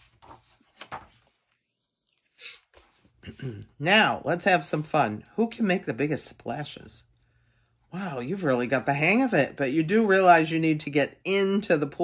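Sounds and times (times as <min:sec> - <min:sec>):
book page turning: 0:00.0 - 0:03.7.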